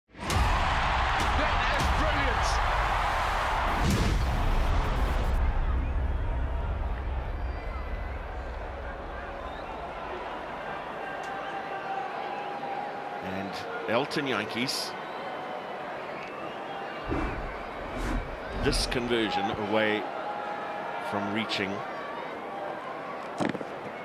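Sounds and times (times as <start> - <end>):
stadium crowd murmur: 5.4 - 24.0
whoosh: 17.1 - 18.9.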